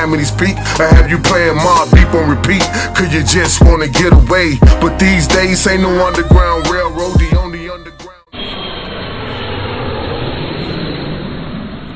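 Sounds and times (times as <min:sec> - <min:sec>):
loud rumbling noise: 0:08.4 - 0:11.9.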